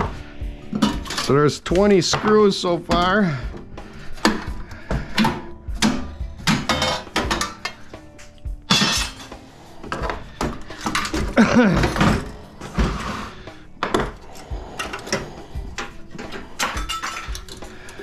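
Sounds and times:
sheet metal clattering: 0.7 - 3.4, 4.2 - 7.8, 8.7 - 14.2, 14.8 - 18.0
person laughing: 11.3 - 12.2.

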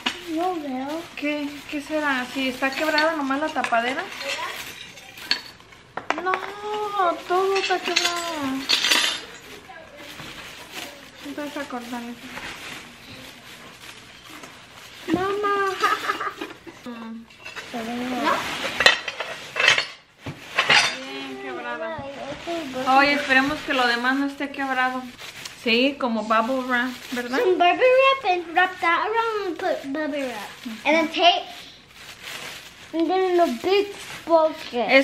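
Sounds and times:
paper wrapping rustling: 0.0 - 35.0
broken glass pieces clinking: 7.5 - 9.5.

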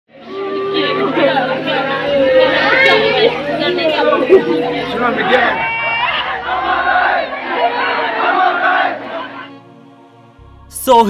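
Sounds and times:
people talking: 0.2 - 5.7, 10.7 - 11.0.

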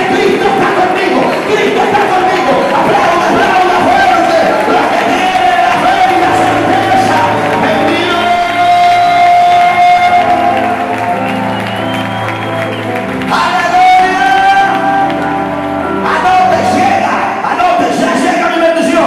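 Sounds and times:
band playing sustained chords: 0.0 - 18.2.

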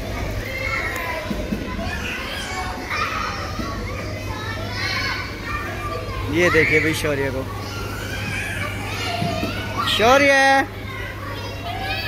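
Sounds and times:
children playing and calling out: 0.0 - 12.0.

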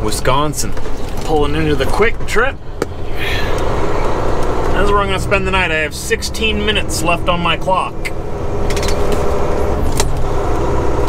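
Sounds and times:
truck engine and road noise: 0.0 - 11.0.

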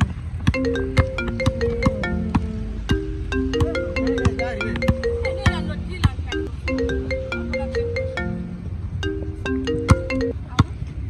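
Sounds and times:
soft low beat: 0.0 - 10.7
bright plinking melody: 0.5 - 10.6.

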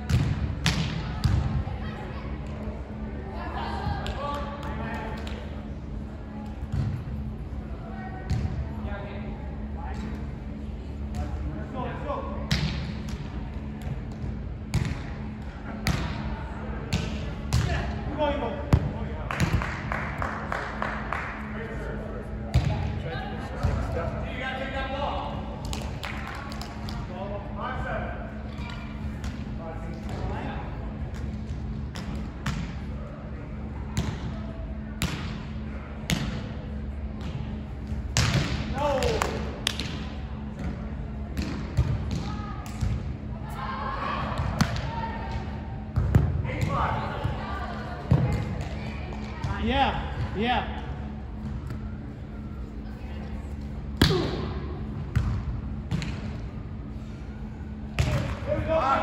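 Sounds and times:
low hum: 0.0 - 59.0.

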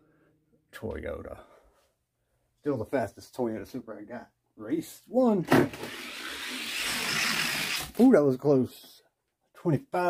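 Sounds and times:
toy cars rolling on track: 5.7 - 8.0.

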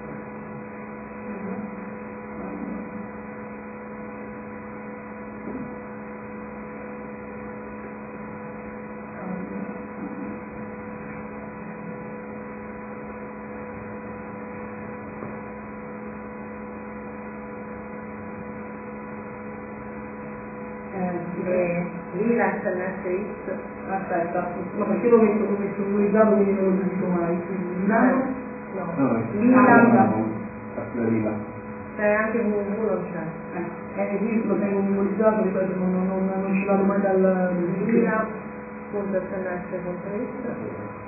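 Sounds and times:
faint murmurs: 0.0 - 3.2, 9.0 - 12.7
electrical hum: 0.0 - 41.0.

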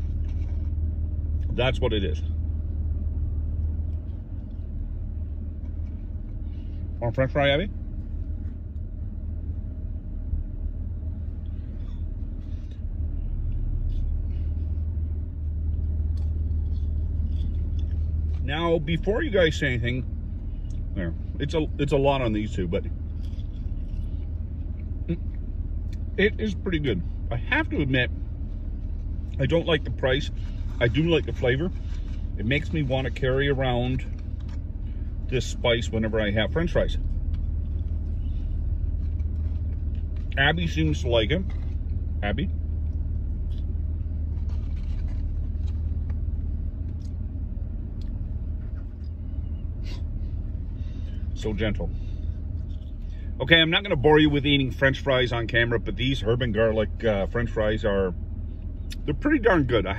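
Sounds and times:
vehicle engine idling: 0.0 - 59.9
faint chewing: 15.6 - 18.4.

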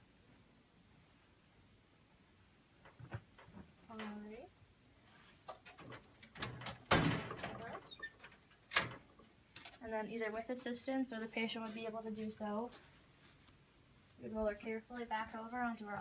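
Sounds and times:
sharp knocks and clatters: 2.8 - 4.1, 5.4 - 9.7
bed linens rustling: 11.4 - 15.6.

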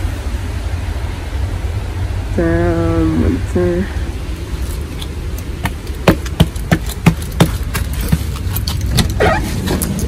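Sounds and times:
steady low rumble: 0.0 - 10.0
footsteps on a doormat: 4.7 - 10.0
sharp taps: 5.4 - 9.1.

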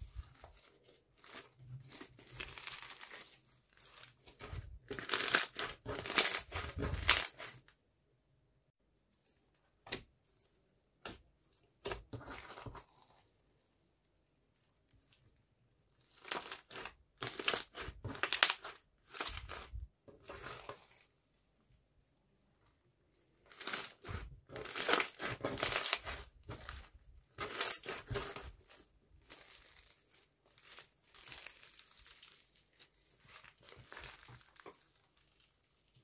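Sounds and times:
slime crackling and popping: 1.2 - 7.6, 16.0 - 21.0, 23.5 - 36.0.

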